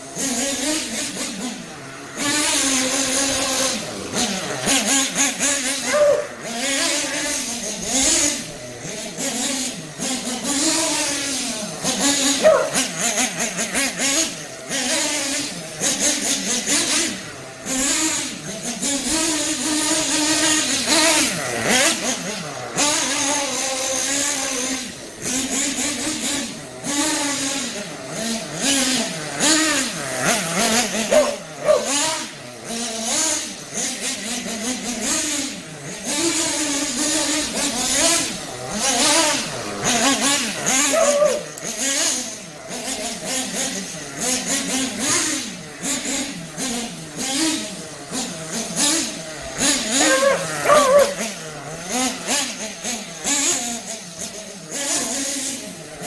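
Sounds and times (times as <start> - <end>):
model buggy engine revving: 0.0 - 56.0.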